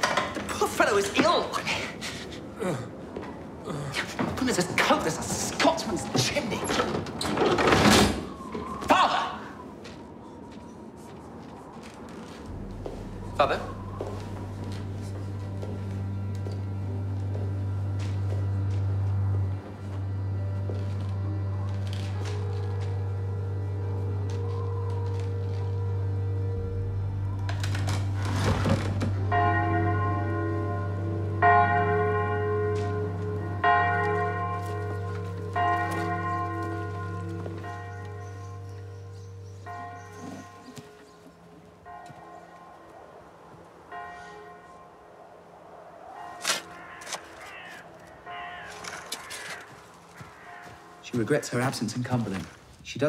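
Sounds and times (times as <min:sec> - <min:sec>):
low steady drone: 0:12.4 - 0:43.9
church bell tolling: 0:12.5 - 0:43.0, 0:43.9 - 0:45.1, 0:48.2 - 0:52.2.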